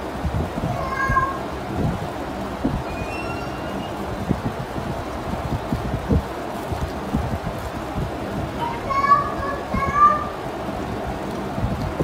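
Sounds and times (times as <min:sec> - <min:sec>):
high-pitched voice calling out: 0:00.8 - 0:01.4, 0:02.9 - 0:04.0, 0:08.6 - 0:10.3.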